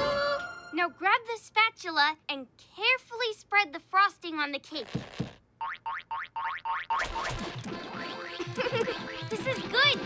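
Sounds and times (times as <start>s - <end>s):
lively music with sliding notes: 7.6s - 10.0s.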